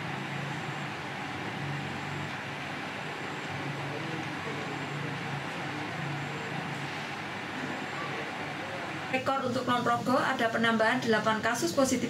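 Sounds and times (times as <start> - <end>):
background ambience: 0.0 - 12.0.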